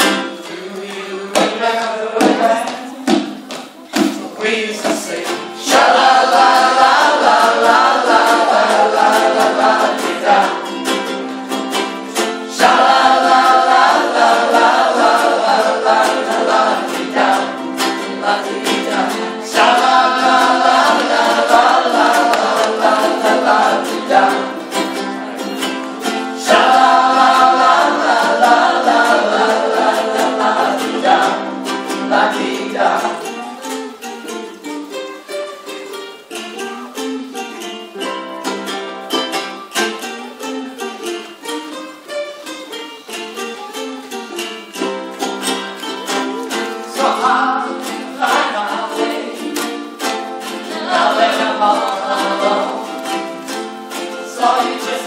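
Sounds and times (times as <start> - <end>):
group singing in unison: 0.0 - 35.4, 44.3 - 55.0
ukuleles strumming: 0.0 - 55.0.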